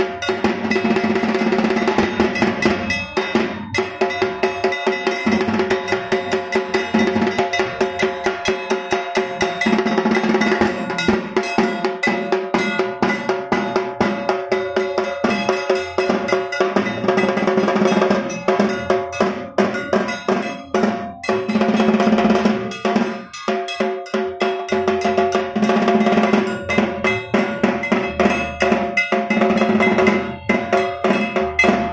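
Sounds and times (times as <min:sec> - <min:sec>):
drums: 0:00.0 - 0:31.9
metal bells beaten rapidly: 0:00.0 - 0:31.9.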